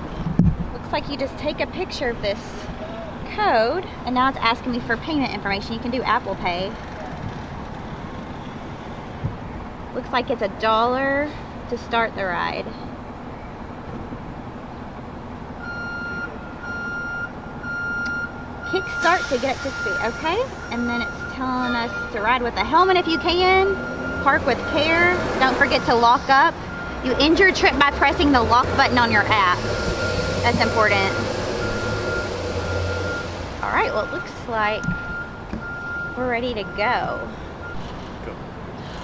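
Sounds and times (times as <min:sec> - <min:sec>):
vehicle idling rumble: 0:00.0 - 0:10.0, 0:10.6 - 0:39.0
street noise: 0:00.0 - 0:39.0.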